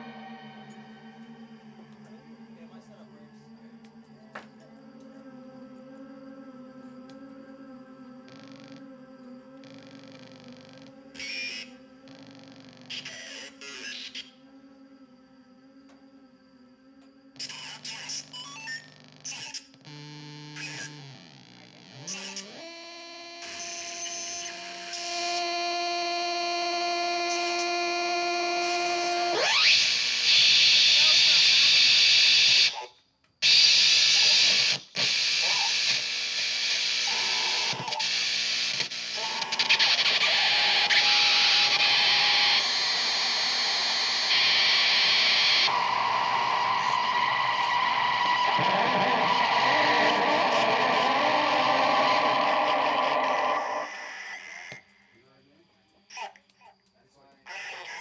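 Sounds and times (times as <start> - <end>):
distorted electronic noise music: 0.0 - 2.0, 9.6 - 14.3, 17.4 - 54.1
steady electronic tone: 0.0 - 5.6, 37.0 - 53.9
steady droning tones: 0.0 - 9.6
click: 34.8 - 36.2.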